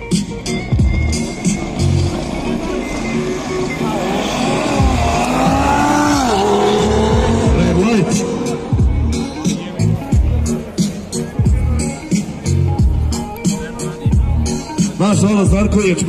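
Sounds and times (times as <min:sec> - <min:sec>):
car engines accelerating: 0:00.0 - 0:16.0
hip hop music with heavy bass: 0:00.0 - 0:16.0.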